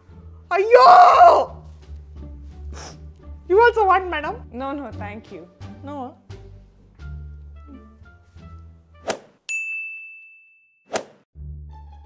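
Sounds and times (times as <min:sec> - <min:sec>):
plucked-bass background music: 0:00.0 - 0:09.1, 0:11.4 - 0:12.0
bright bell ding: 0:09.5 - 0:10.8.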